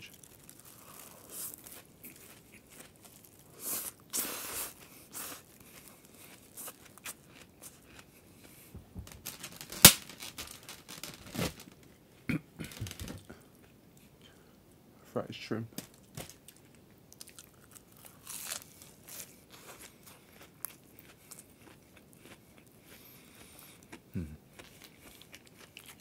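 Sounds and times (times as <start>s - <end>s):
plastic bag and container crinkling: 0.0s - 3.5s, 8.9s - 11.9s, 12.6s - 13.3s, 15.7s - 19.9s.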